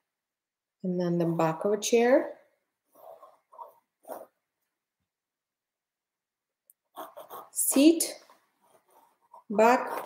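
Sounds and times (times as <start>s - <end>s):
pencil scratching on canvas: 2.9s - 4.4s, 6.8s - 10.0s.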